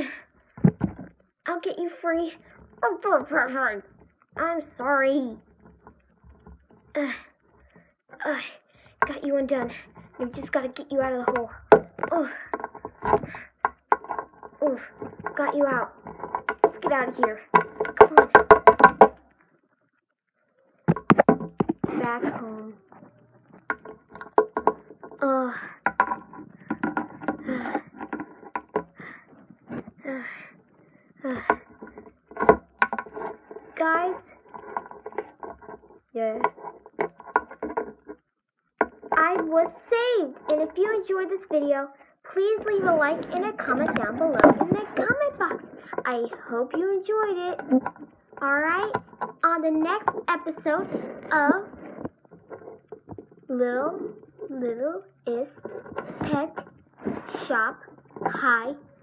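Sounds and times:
child speaking: 0.0 - 0.3, 1.5 - 5.5, 7.0 - 7.4, 8.2 - 12.6, 14.6 - 16.0, 16.6 - 18.6, 21.9 - 23.1, 25.2 - 25.8, 30.0 - 30.5, 31.2 - 31.6, 33.8 - 34.4, 36.1 - 36.5, 39.2 - 47.7, 48.4 - 51.8, 53.5 - 56.6, 57.3 - 58.9
plastic toys clicking and knocking: 0.0 - 59.0.

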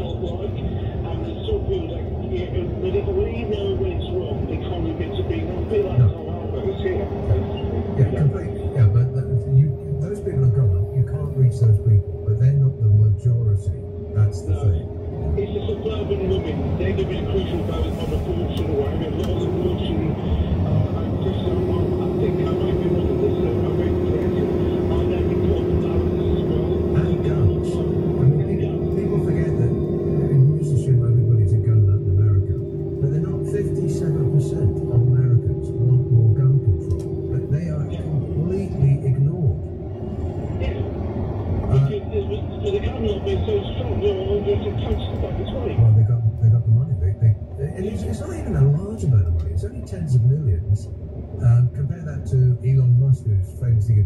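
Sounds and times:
car road and engine rumble: 0.0 - 54.0
indistinct voices: 0.0 - 54.0.

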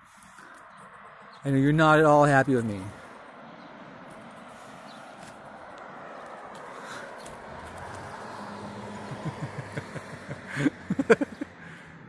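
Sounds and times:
road traffic passing: 0.0 - 12.0
low engine hum: 3.0 - 12.0.

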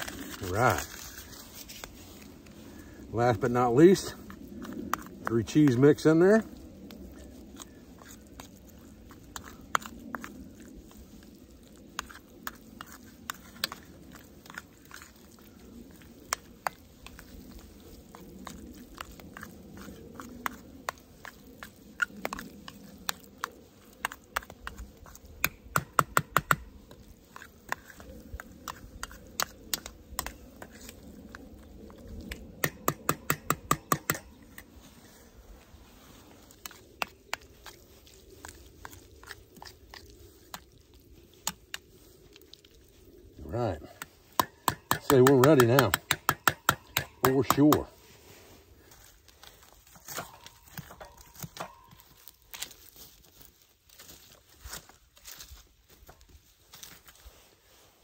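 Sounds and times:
spoon stirring in metal skillet: 6.8 - 31.0.

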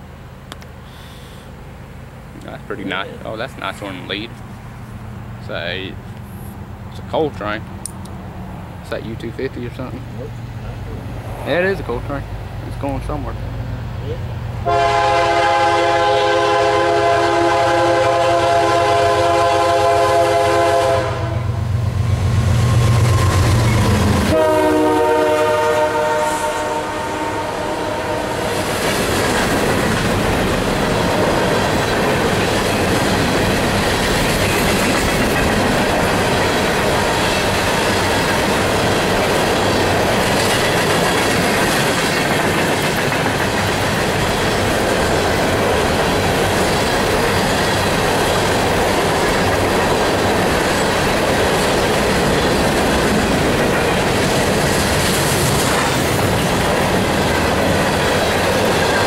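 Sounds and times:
locomotive engines rumbling: 0.0 - 59.0
locomotive horn blast: 14.6 - 21.6, 24.2 - 28.6
train wheels clattering on rails: 28.4 - 59.0.

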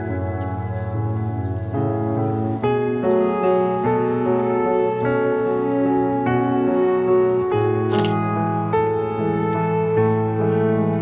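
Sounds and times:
piano music with sustained chords: 0.0 - 11.0
camera shutter click: 7.6 - 8.2.

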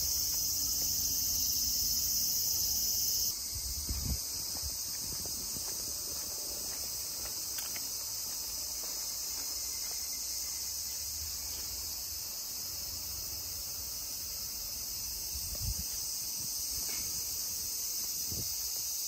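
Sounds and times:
insects chirring: 0.0 - 19.0.

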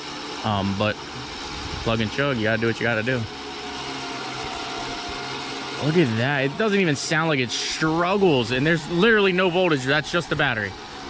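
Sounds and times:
electric winch motor running: 0.0 - 11.0.

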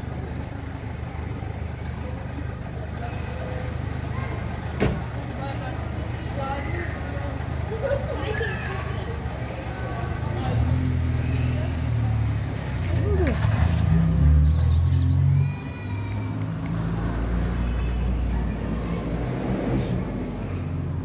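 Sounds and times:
vehicle engine rumbling: 0.0 - 21.0.

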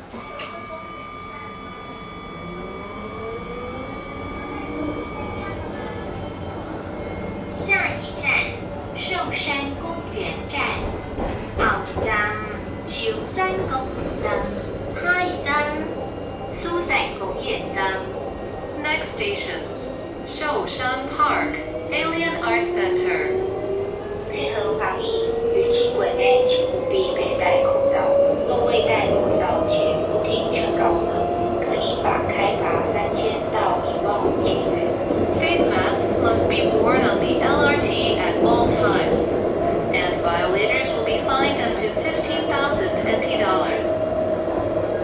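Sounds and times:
tram motors whining: 0.0 - 45.0.

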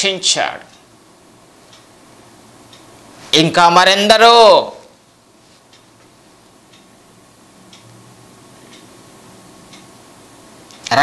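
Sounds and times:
clock ticking faintly: 0.6 - 1.0, 1.6 - 2.0, 2.6 - 3.1, 6.7 - 7.0, 8.6 - 10.1.

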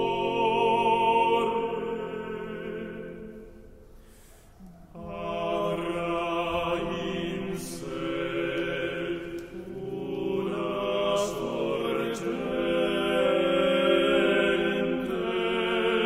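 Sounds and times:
male voices chanting in harmony: 4.9 - 16.0.

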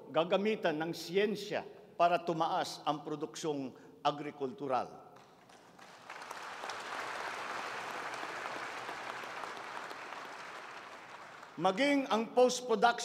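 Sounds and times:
audience applauding: 5.2 - 11.6.

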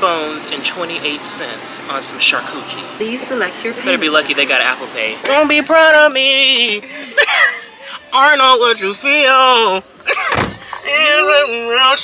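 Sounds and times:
car door shutting: 10.0 - 10.9.

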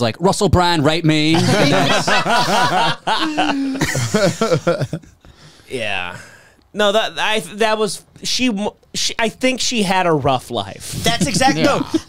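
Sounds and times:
men laughing: 1.4 - 5.3, 10.9 - 12.0.

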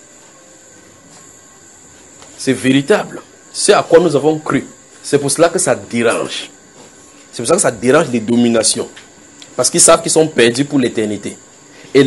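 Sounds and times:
high-pitched whine: 0.0 - 12.0
recording hiss: 0.0 - 12.0.

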